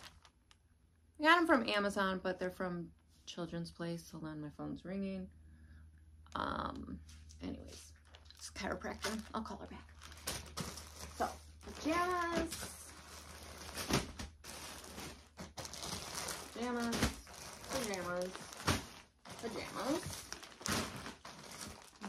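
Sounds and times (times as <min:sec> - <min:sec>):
plastic packaging crinkling: 0:00.0 - 0:00.6, 0:07.6 - 0:22.0.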